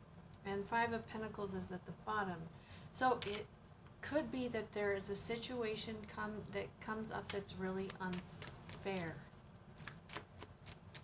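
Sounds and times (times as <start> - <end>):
cards being shuffled: 7.3 - 11.0.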